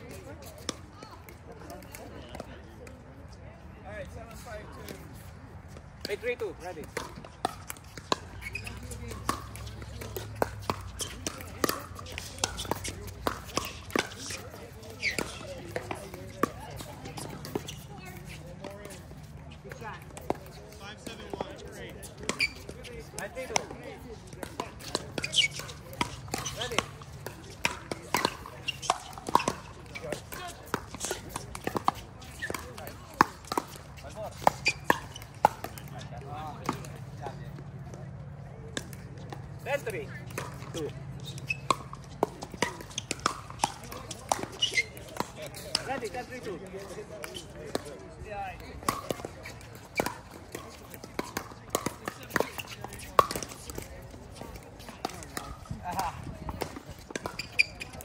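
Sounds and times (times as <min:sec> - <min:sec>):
paddles hitting plastic ball: 0:06.0 - 0:37.1, 0:38.7 - 0:48.0, 0:48.6 - 0:58.0.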